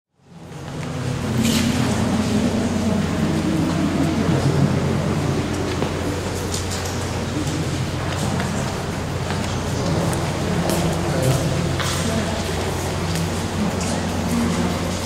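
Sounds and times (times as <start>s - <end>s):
murmur of voices: 0.2s - 15.0s
steady low hum: 0.2s - 15.0s
echoing clicks and knocks: 0.6s - 15.0s.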